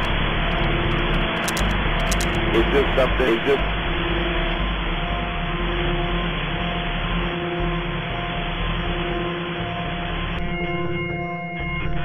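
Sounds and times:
electronic ambient hiss wash: 0.0 - 10.4
sustained drone tones: 0.0 - 12.0.

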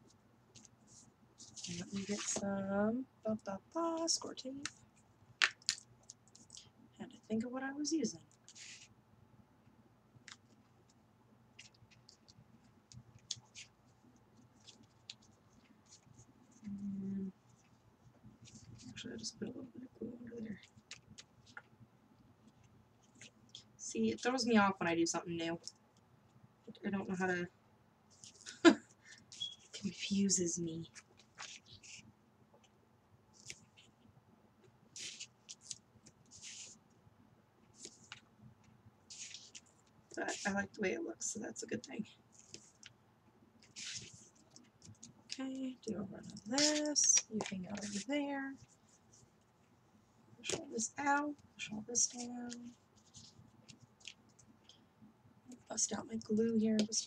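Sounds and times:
tape and paper rustles: 1.4 - 2.5, 30.9 - 32.0, 35.0 - 36.8, 39.1 - 40.6, 43.6 - 45.4, 46.2 - 48.1
roll of tape being handled: 11.6 - 16.3, 30.9 - 32.7, 34.6 - 37.0, 37.7 - 40.5, 43.6 - 45.4, 52.1 - 54.8.

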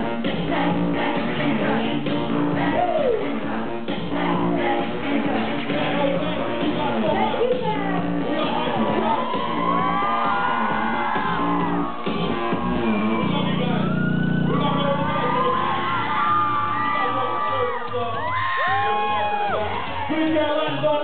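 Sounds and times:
loud live music: 0.0 - 21.0
crowd whooping and shouting: 2.6 - 3.2, 4.1 - 4.8, 8.3 - 21.0.

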